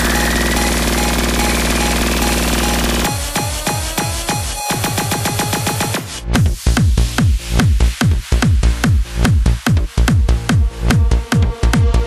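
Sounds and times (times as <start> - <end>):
stuttering distorted synth: 0.0 - 6.2.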